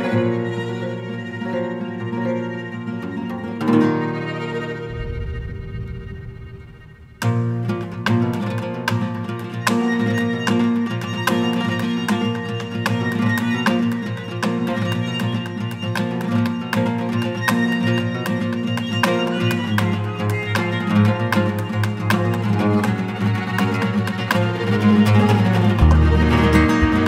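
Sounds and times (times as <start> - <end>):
bowed violin: 0.0 - 27.0
plucked acoustic guitar: 0.0 - 27.0
double bass line: 4.8 - 7.6, 25.8 - 27.0.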